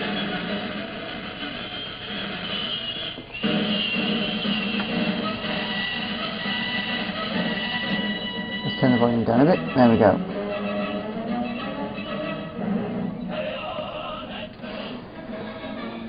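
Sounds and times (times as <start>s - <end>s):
film title music through speakers: 0.0s - 14.0s.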